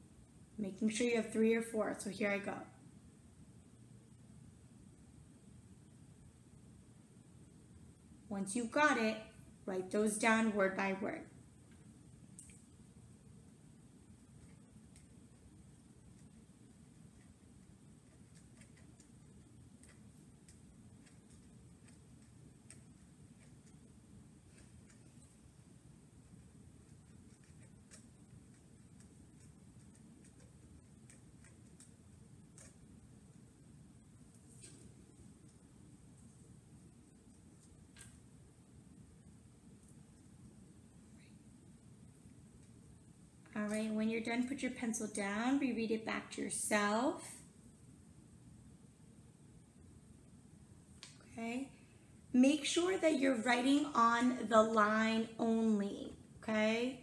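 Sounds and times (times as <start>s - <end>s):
low room hum: 0.0s - 57.0s
pencil writing on paper: 26.8s - 31.8s.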